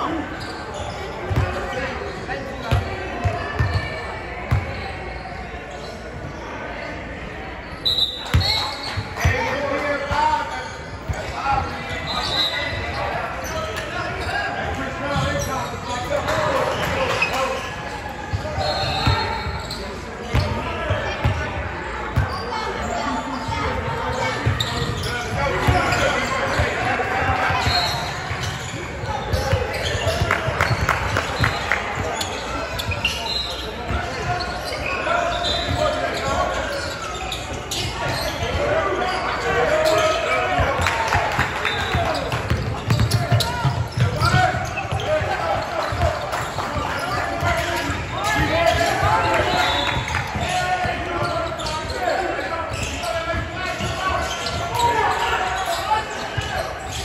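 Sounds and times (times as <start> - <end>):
voices echoing in gym: 0.0 - 57.0.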